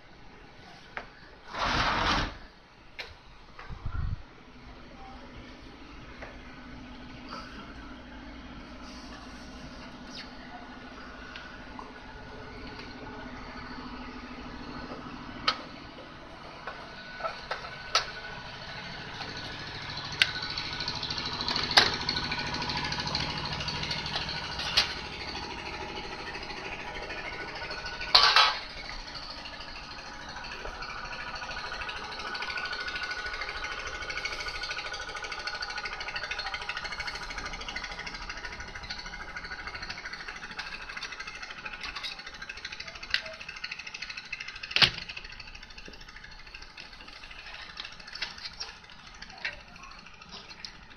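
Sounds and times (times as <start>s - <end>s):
metal clatter: 26.2s - 29.8s, 30.4s - 50.9s.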